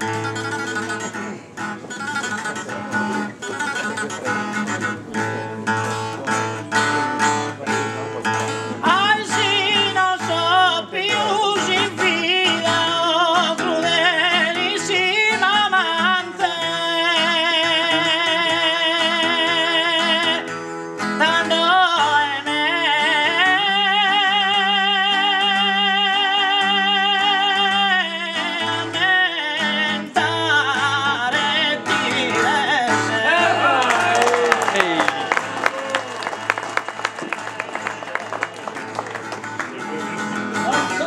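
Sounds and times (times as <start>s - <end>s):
man singing with vibrato: 0.0s - 35.6s
acoustic guitar accompaniment: 0.0s - 41.0s
man singing ornamented line: 21.2s - 33.8s.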